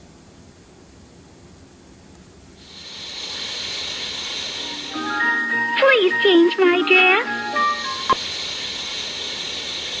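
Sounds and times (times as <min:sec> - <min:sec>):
television static hiss: 0:00.0 - 0:10.0.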